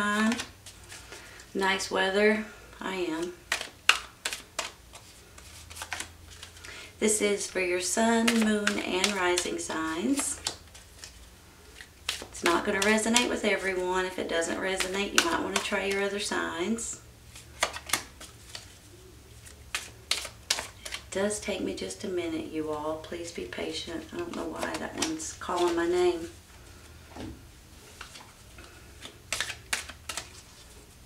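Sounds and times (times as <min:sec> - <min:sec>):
low steady hum: 0:00.0 - 0:31.0
cards clicking and tapping: 0:00.2 - 0:01.2, 0:03.2 - 0:06.7, 0:08.0 - 0:11.2, 0:11.8 - 0:16.3, 0:17.5 - 0:18.8, 0:19.4 - 0:21.1, 0:24.1 - 0:25.9, 0:27.9 - 0:30.5.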